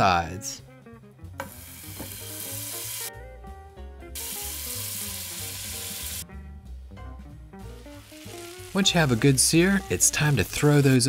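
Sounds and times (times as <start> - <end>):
meat sizzling in hot oil: 1.4 - 3.1, 4.2 - 6.2, 7.7 - 11.0.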